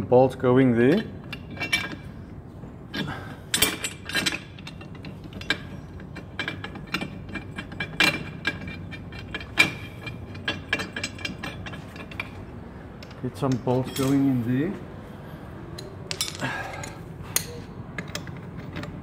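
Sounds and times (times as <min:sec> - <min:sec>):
metallic clicks and clinks: 0:13.0 - 0:14.3, 0:15.8 - 0:19.0.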